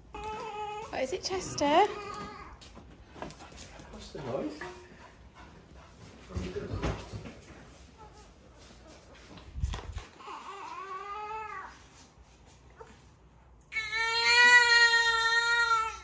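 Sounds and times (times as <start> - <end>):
dog whining: 0.0 - 2.6.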